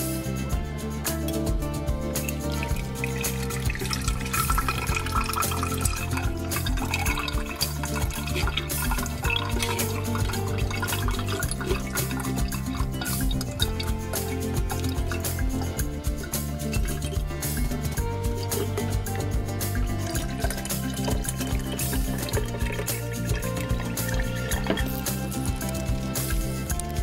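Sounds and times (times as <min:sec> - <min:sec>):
background music with steady beat: 0:00.0 - 0:27.0
liquid poured through strainer: 0:02.2 - 0:27.0.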